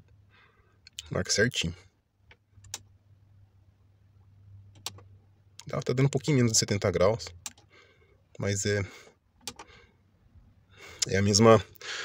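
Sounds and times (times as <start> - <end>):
man's intake of breath: 11.8 - 12.0.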